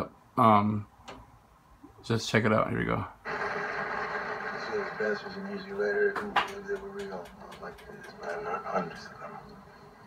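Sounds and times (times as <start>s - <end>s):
film soundtrack from television: 0.0s - 10.0s
voices: 4.4s - 10.0s.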